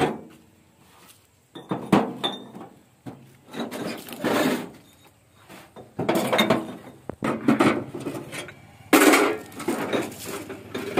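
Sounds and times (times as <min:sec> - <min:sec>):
rattling and scraping: 0:01.6 - 0:10.9.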